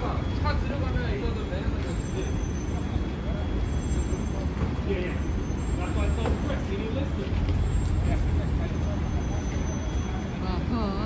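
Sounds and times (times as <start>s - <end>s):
city traffic rumble: 0.0s - 11.0s
people talking: 4.2s - 11.0s.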